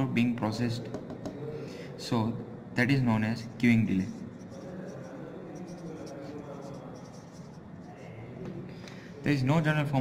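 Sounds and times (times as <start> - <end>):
marker pen scratching on board: 4.1 - 8.0.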